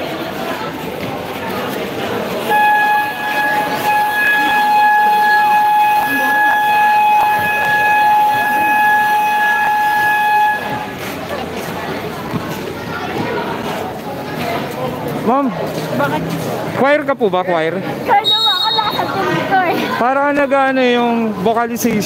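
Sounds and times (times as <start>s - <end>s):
crowd chatter: 0.0s - 22.0s
game buzzer long tone: 2.5s - 10.9s.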